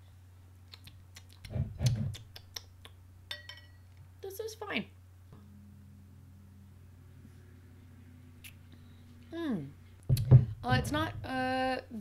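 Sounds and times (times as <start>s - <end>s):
wet mouth clicks: 0.6s - 3.0s, 8.4s - 8.6s
glass clink: 3.3s - 3.9s.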